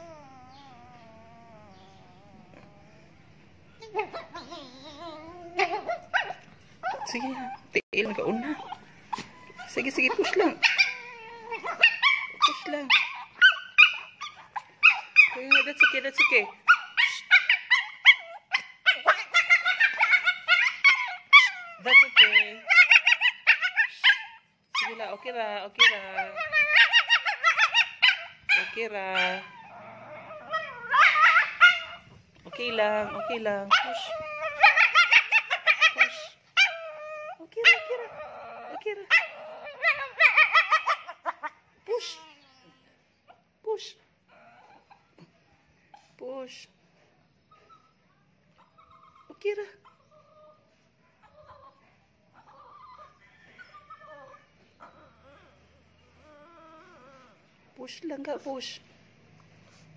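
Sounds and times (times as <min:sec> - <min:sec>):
dog whimpering and yelping: 0:00.0 - 0:43.5, 0:44.2 - 0:45.2, 0:47.4 - 0:57.6.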